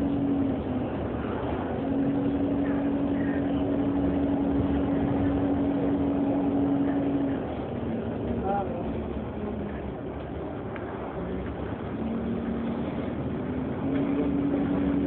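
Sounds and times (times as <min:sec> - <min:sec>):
bus drivetrain hum: 0:00.0 - 0:15.0
road and cabin noise: 0:00.0 - 0:15.0.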